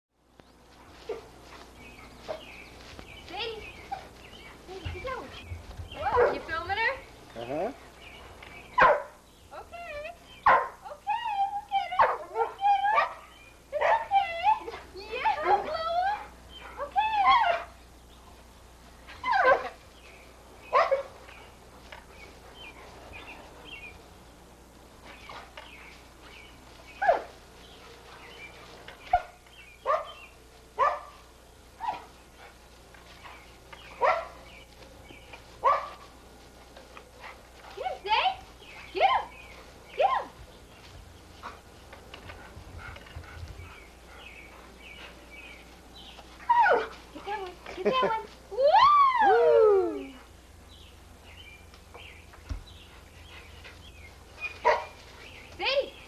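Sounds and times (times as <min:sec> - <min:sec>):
dog barking: 0:08.8 - 0:09.2, 0:10.4 - 0:10.8, 0:29.1 - 0:30.2, 0:30.8 - 0:31.2, 0:34.0 - 0:34.4, 0:35.6 - 0:36.0, 0:54.6 - 0:54.9.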